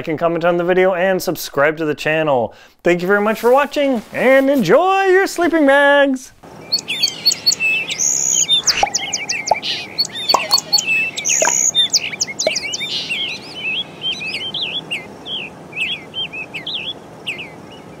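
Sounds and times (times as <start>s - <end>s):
birds chirping: 6.5s - 18.0s.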